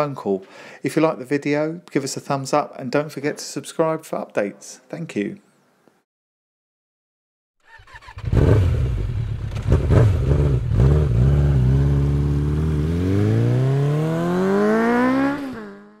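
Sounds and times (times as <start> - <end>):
motorcycle engine revving: 7.6 - 16.0.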